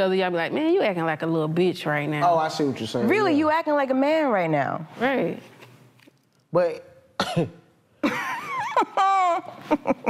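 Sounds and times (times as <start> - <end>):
person clearing throat: 7.2 - 7.6.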